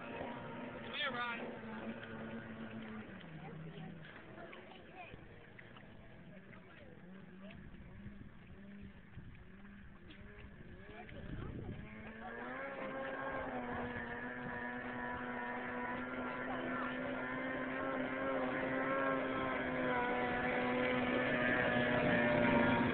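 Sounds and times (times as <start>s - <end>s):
boat engine: 0.0s - 22.9s.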